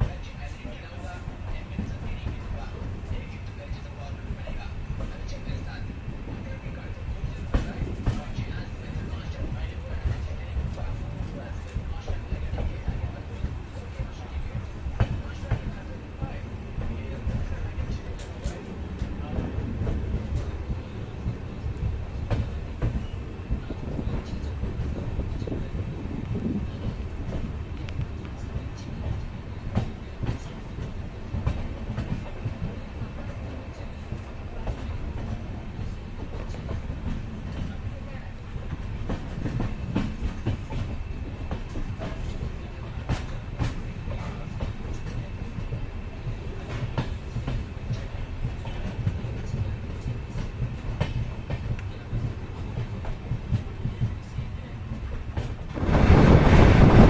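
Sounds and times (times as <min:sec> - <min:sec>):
train wheels rumbling on rails: 0:00.0 - 0:57.0.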